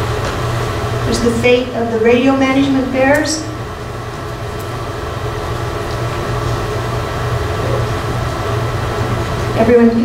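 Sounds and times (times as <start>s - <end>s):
steady low machinery hum: 0.0s - 10.0s.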